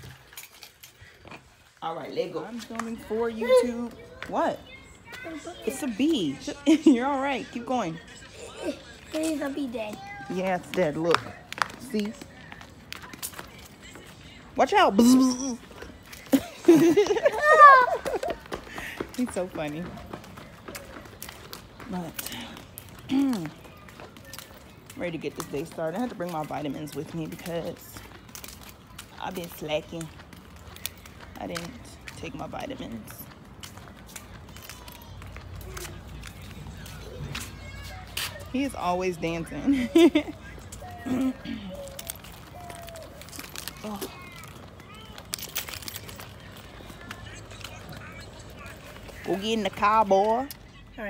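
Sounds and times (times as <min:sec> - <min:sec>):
footsteps on concrete: 0:00.0 - 0:51.0.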